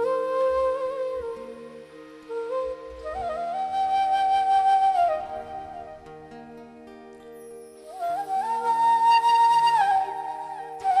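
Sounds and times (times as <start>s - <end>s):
bamboo flute long note: 0.0s - 6.6s, 7.8s - 11.0s.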